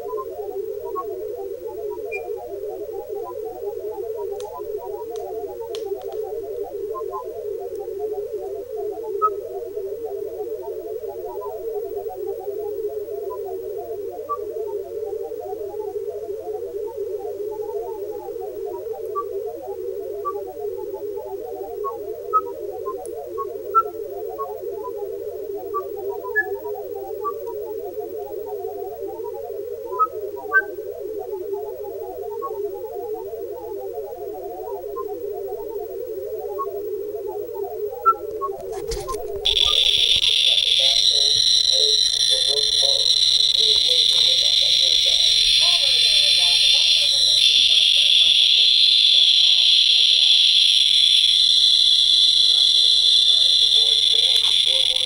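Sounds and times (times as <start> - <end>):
survey meter high-pitched buzz: 24.1 - 55.0
high pips: 38.5 - 48.8
low blips from spectrometer: 39.3 - 55.0.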